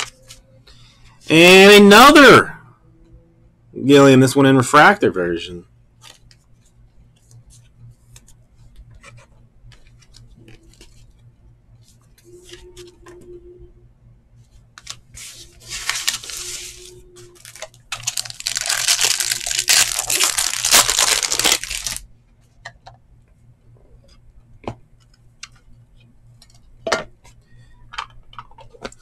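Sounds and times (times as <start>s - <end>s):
plastic sleeve rustling and scraping: 14.4s - 22.0s.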